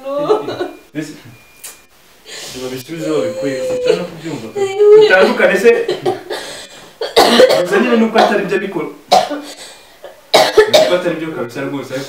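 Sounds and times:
person talking: 0:02.6 - 0:05.9
person coughing: 0:05.8 - 0:08.4, 0:09.1 - 0:11.0.

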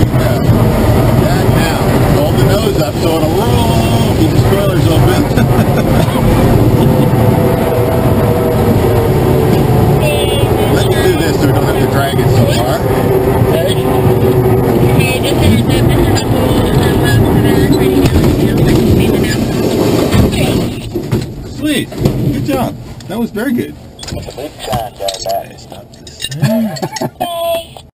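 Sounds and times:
wheel rumbling on runway: 0:00.0 - 0:26.4.

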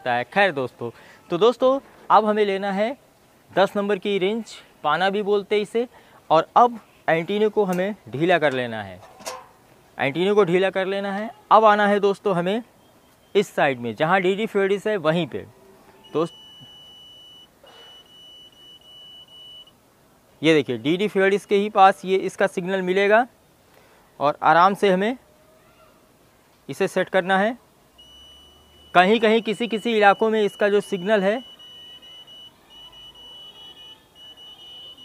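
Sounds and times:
high-pitched meter beep tone: 0:16.0 - 0:19.8, 0:28.0 - 0:35.0.

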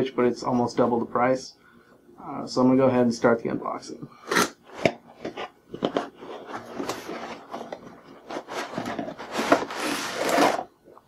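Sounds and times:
cardboard and pulp rubbing: 0:05.3 - 0:10.7.

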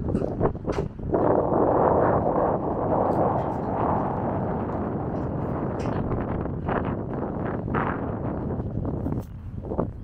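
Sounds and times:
city street traffic hum: 0:00.0 - 0:10.0
wind buffeting microphone: 0:00.0 - 0:10.0.

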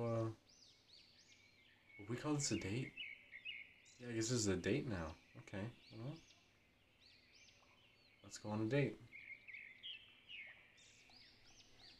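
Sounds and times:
background hiss: 0:00.0 - 0:11.9
bird chirping: 0:00.0 - 0:11.9.

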